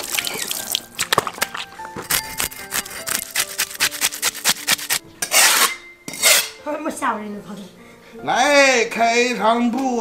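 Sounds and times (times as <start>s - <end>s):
cleaver scraping fish scales: 0.2s - 6.5s.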